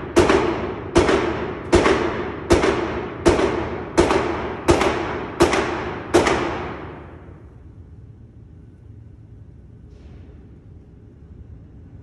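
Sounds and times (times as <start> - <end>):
pistol shots echoing: 0.0 - 7.4.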